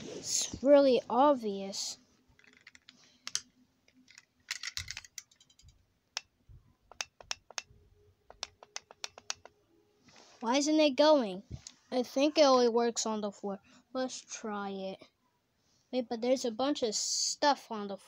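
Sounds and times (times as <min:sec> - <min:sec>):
buttons clicking on toy handset: 0:06.9 - 0:07.7, 0:08.3 - 0:09.5.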